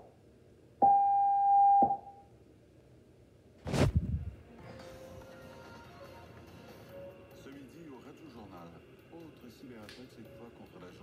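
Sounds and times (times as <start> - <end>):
long steady beep: 0.8 - 2.2.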